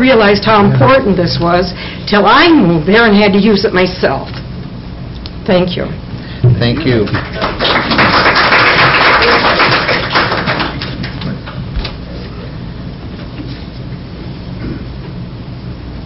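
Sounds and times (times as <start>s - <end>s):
audience applauding: 6.7s - 11.3s.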